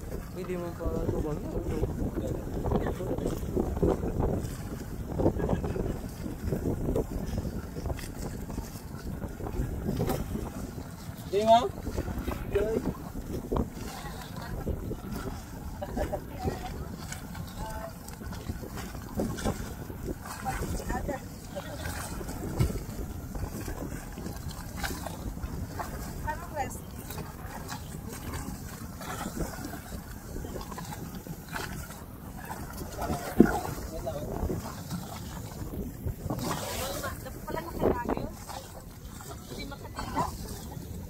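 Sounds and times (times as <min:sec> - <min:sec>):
choppy sea water: 0:00.0 - 0:41.0
wind buffeting microphone: 0:00.0 - 0:41.0.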